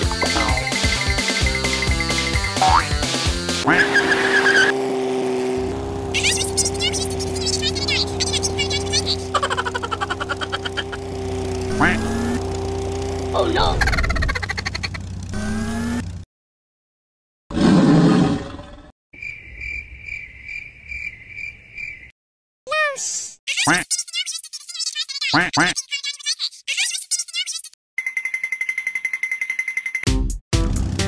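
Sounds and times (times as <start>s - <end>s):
background music: 0.0s - 3.7s
cartoon rattle effect: 2.1s - 2.9s, 6.1s - 11.1s, 11.7s - 12.4s, 13.4s - 16.0s, 23.5s - 30.0s.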